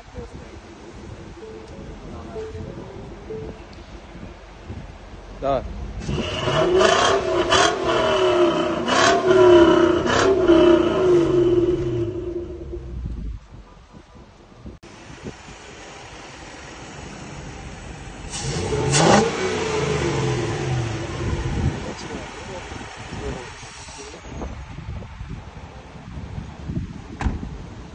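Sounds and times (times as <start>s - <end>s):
car engine revving and idling: 4.2s - 13.2s, 15.0s - 24.2s.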